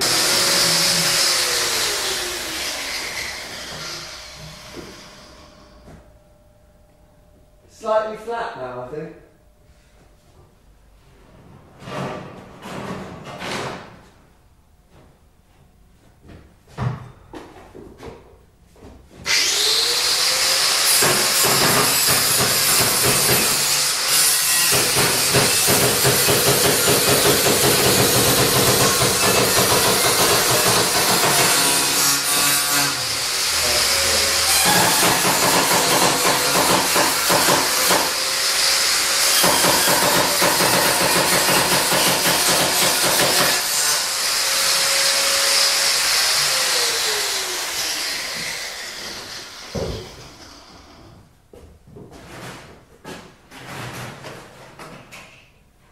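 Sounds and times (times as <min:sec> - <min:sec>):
angle grinder cutting piano: 0:00.0 - 0:06.4, 0:19.3 - 0:51.0.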